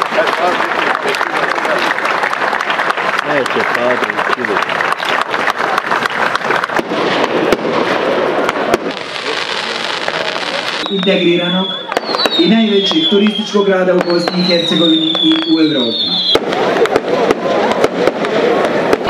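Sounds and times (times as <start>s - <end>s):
crowd applauding: 0.0s - 11.1s, 11.7s - 19.0s
firecrackers cracking: 0.0s - 19.0s
voices in crowd: 0.0s - 19.0s.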